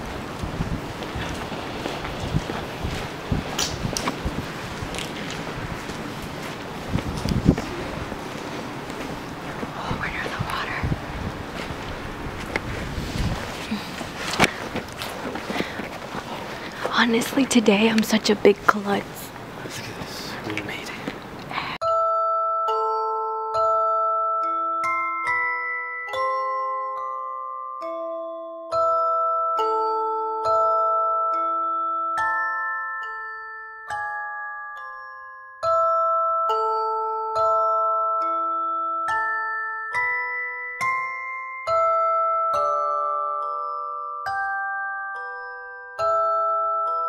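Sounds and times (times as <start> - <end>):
wind buffeting microphone: 0.0 - 20.2
handheld camera background noise: 0.0 - 21.8
footsteps on concrete: 0.9 - 9.7, 11.3 - 17.0
music box notes: 21.8 - 47.0.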